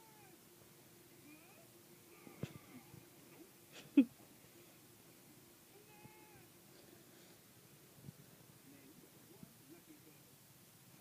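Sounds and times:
steady low hum: 0.0 - 11.0
faint voice calling out: 1.2 - 2.9, 5.7 - 6.5.

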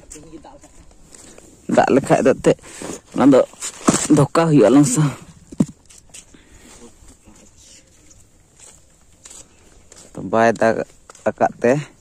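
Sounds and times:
person speaking: 1.6 - 5.4, 10.0 - 12.0.

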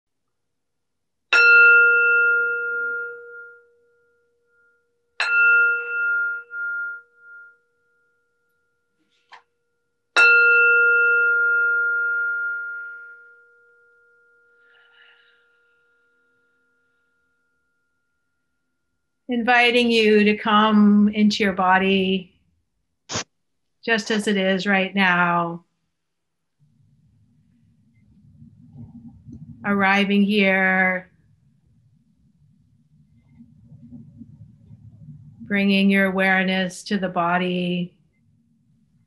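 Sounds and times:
meditation bell ringing: 1.3 - 19.2.

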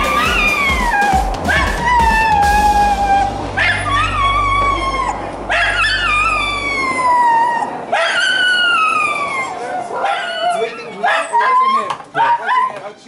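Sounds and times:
dog howling and whining: 0.0 - 12.8.

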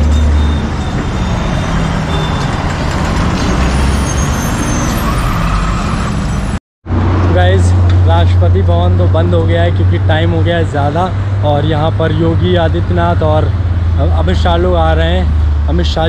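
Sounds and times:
busy road traffic rumble: 0.0 - 16.0.

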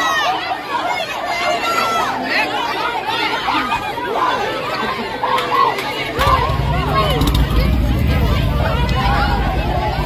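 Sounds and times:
dense crowd chatter: 0.0 - 10.0.

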